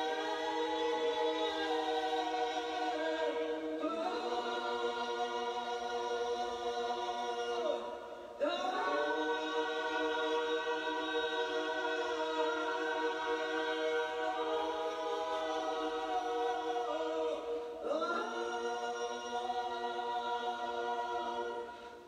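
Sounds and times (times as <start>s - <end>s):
choir singing a cappella: 0.0s - 22.0s.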